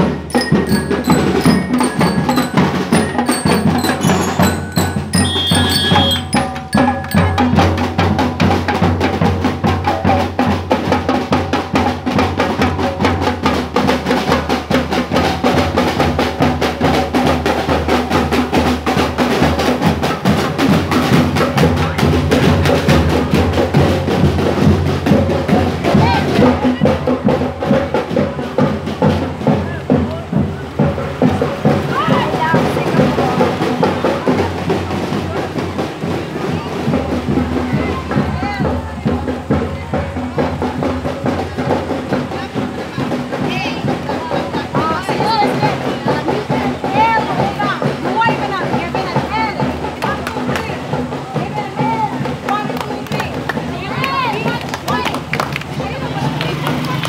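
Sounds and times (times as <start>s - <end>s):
bell lyres ringing: 0.0s - 8.6s
snare and bass drums: 0.0s - 57.0s.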